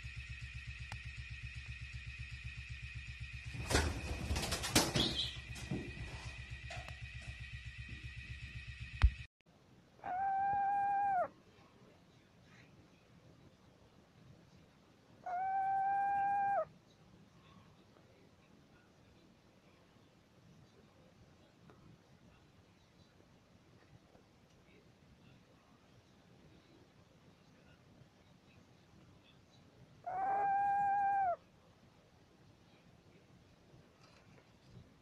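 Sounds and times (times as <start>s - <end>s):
small owl calling: 10.0s - 11.4s, 15.2s - 16.7s, 30.0s - 31.5s.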